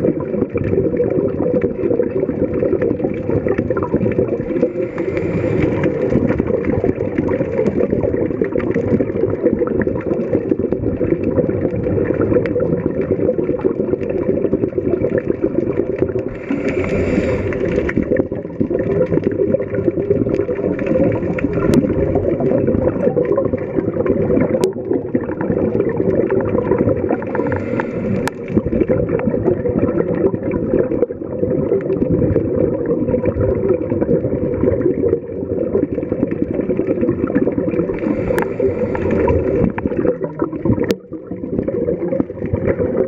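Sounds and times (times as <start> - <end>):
low underwater rushing noise: 0.0 - 43.0
regulator bubbles gurgling: 0.0 - 43.0
faint steady hum: 4.5 - 6.8, 16.3 - 18.1, 27.0 - 28.6, 37.8 - 39.9
faint clicks: 27.2 - 28.6, 38.0 - 39.9.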